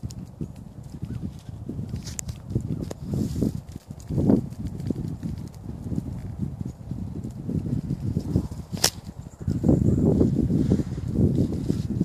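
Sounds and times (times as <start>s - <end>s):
microphone handling noise: 0.0s - 12.0s
wind buffeting microphone: 0.0s - 12.0s
sharp click: 8.7s - 9.1s.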